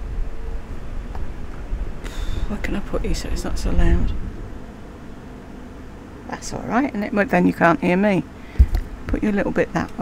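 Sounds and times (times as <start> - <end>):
electric fan whooshing: 0.0 - 10.0.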